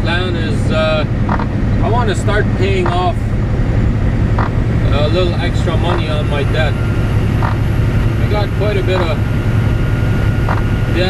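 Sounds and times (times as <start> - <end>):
diesel truck engine drone: 0.0 - 11.0.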